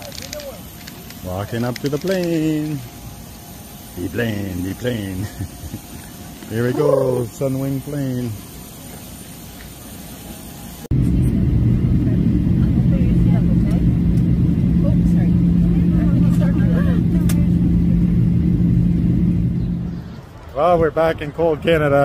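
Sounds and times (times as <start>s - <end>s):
airport apron sound: 0.0s - 21.6s
jet engine cabin rumble: 10.8s - 20.2s.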